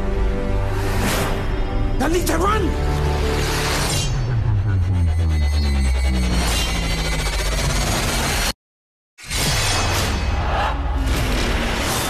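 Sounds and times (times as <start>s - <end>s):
sound effects: 2.9s - 8.6s
electronic score: 4.0s - 8.2s.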